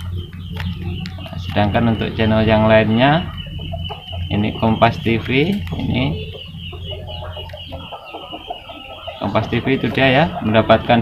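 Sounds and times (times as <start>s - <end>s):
clucking bird calls: 0.0s - 11.0s
low hum: 0.0s - 11.0s.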